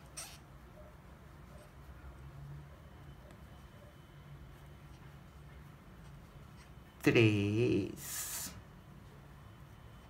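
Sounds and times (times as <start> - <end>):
woman's voice hissing s: 8.0 - 8.6.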